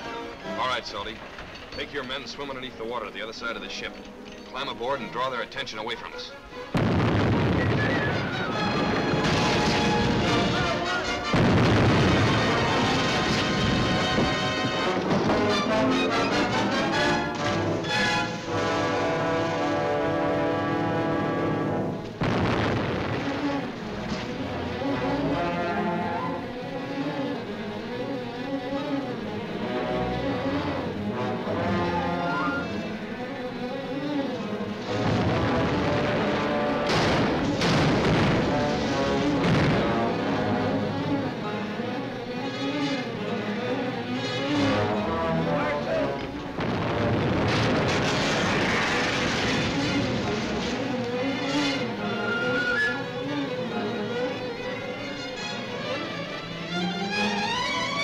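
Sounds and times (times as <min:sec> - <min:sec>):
orchestral film music: 0:00.0 - 0:58.0
cannon shots booming: 0:06.7 - 0:15.8, 0:22.2 - 0:24.6, 0:34.8 - 0:40.4, 0:46.5 - 0:51.0.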